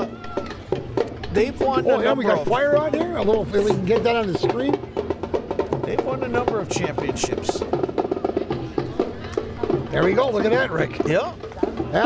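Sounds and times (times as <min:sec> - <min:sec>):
marching drum corps: 0:00.0 - 0:12.0.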